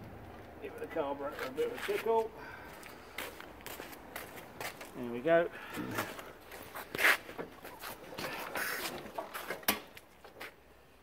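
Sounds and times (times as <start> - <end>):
boot scuffing: 3.1 - 5.0, 5.9 - 9.6.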